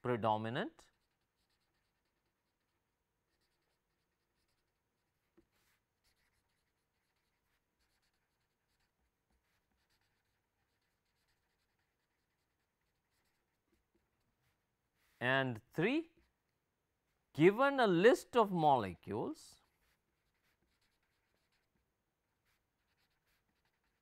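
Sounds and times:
marker scratching on paper: 0.9 - 15.2, 19.6 - 24.0.

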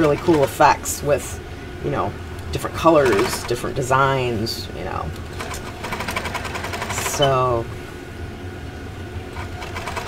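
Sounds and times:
electric sewing machine running: 5.3 - 7.2, 9.3 - 10.0.

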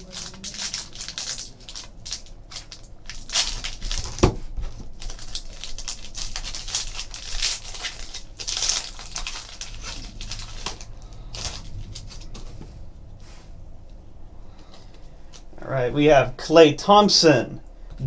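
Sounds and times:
card pack wrapper crinkling and tearing: 0.0 - 12.6.

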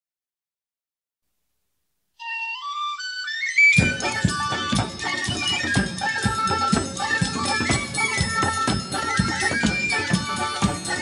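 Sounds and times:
flute-like melody: 2.2 - 11.0.

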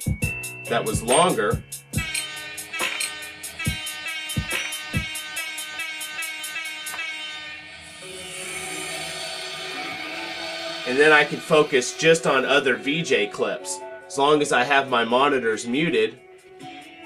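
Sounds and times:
sustained synth wash: 7.6 - 15.3.

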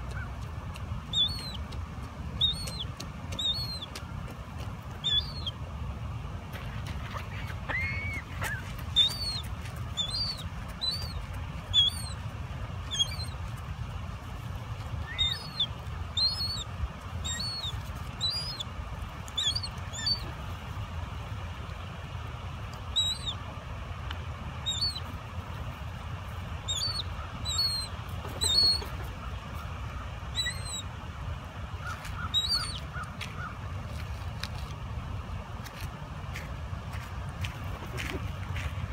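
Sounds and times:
gulls calling: 1.0 - 1.7, 2.4 - 5.6, 7.1 - 12.2, 12.8 - 13.4, 15.0 - 18.7, 19.3 - 20.4, 22.9 - 23.4, 24.6 - 25.1, 26.6 - 30.9, 31.8 - 33.6.

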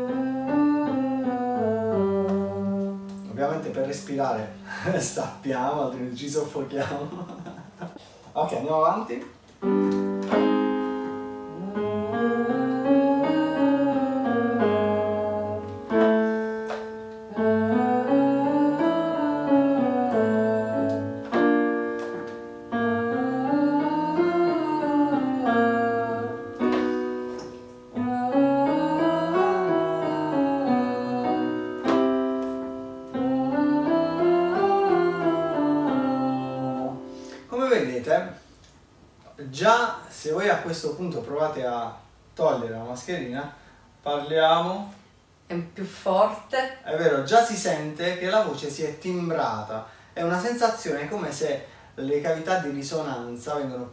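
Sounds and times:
man and woman singing vocal warm-up: 0.0 - 5.2, 11.3 - 37.5
electric keyboard notes: 0.0 - 5.4, 9.6 - 37.7.

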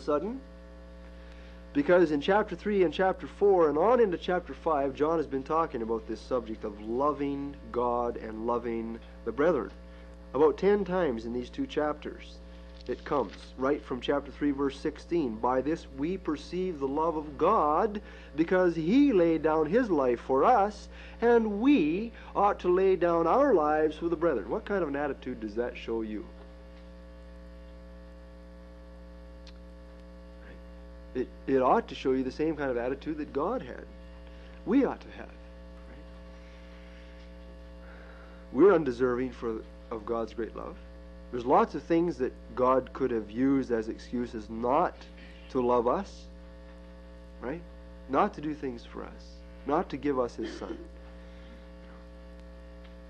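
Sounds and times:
electrical mains hum: 0.0 - 53.0.

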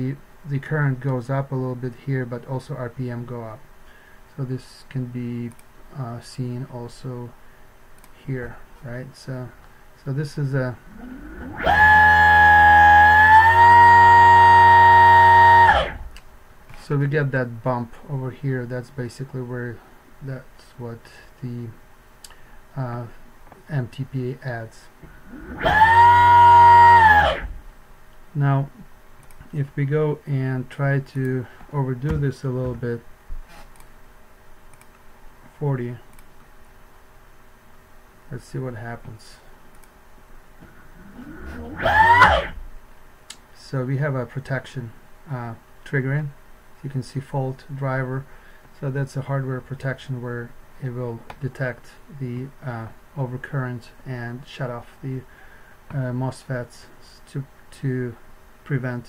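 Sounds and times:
electric motor whining: 10.9 - 16.2, 25.1 - 27.6, 41.0 - 42.6.

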